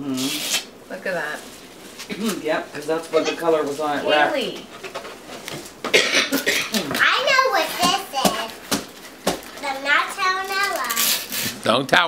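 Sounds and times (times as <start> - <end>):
adult speech: 2.1 - 4.6
child's high-pitched voice: 7.0 - 8.6, 9.6 - 11.3
wrapping paper rustling: 9.0 - 11.6.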